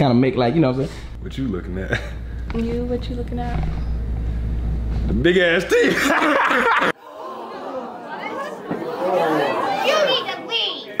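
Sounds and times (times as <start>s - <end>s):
crowd chatter: 7.0s - 11.0s.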